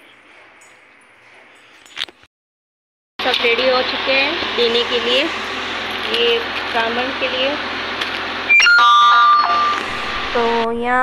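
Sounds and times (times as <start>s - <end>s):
electronic doorbell chime: 8.5s - 9.9s.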